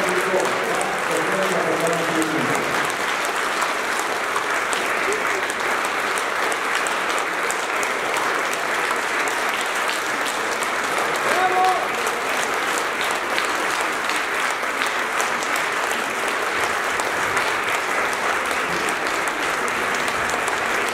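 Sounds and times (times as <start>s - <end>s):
audience applauding: 0.0s - 20.9s
person calling out: 11.3s - 12.0s.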